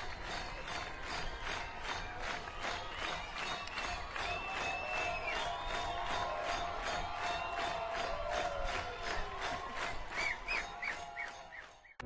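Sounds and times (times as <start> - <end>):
crowd cheering: 0.0 - 12.0
rhythmic clapping: 0.0 - 12.0.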